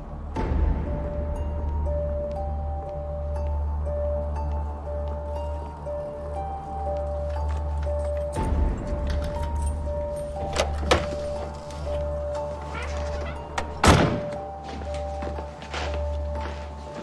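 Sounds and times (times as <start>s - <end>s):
background music with low drone: 0.0s - 17.0s
door thunk: 13.5s - 14.4s.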